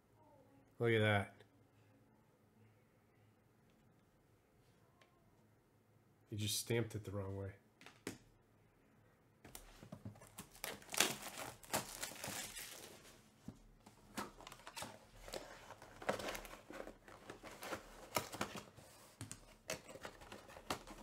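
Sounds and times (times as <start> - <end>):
plastic wrap crinkling and tearing: 10.2 - 13.2, 13.9 - 18.8, 19.5 - 21.0.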